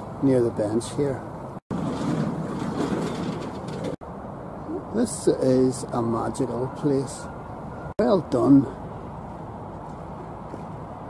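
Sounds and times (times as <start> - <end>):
distant road traffic: 0.0 - 11.0.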